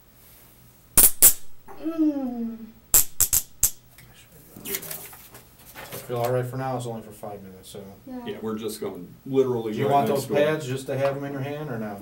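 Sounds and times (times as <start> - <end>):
drawn-out falling voice: 1.7 - 2.8.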